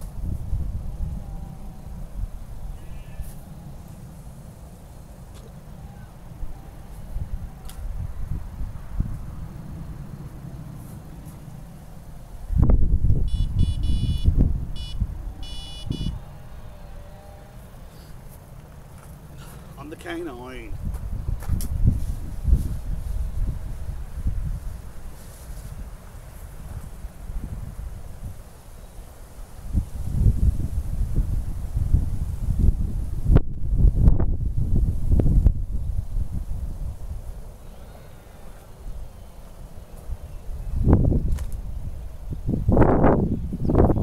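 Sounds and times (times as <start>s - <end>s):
wind buffeting microphone: 0.0s - 16.8s, 18.8s - 44.0s
bite alarm bleeps: 13.3s - 16.2s.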